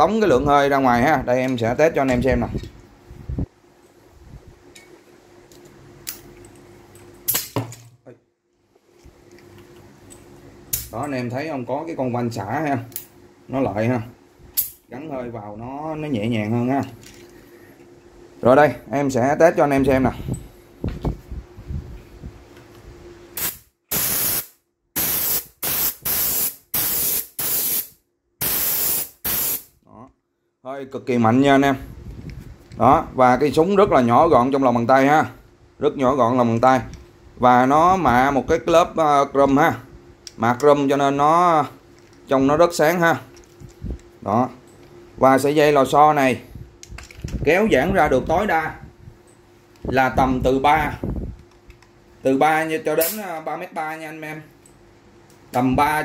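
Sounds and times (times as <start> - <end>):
low background hum: 0.0 - 56.0
air blow gun blasts: 23.4 - 29.7.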